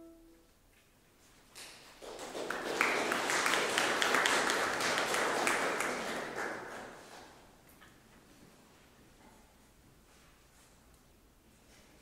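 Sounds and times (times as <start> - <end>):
audience applause: 2.0 - 7.4.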